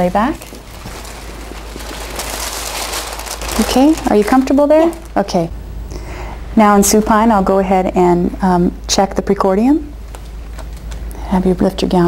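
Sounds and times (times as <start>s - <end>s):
paper gown crinkling: 0.0s - 5.5s, 10.0s - 11.2s.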